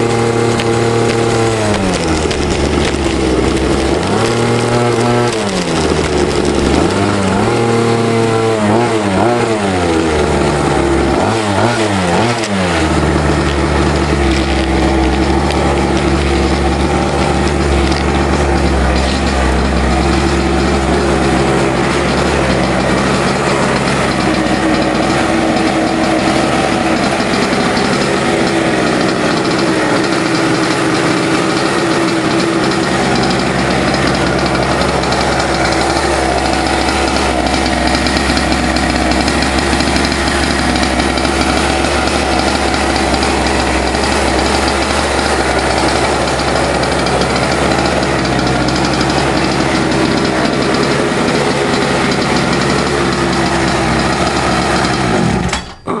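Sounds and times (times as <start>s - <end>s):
go-kart engine running: 0.0s - 56.0s.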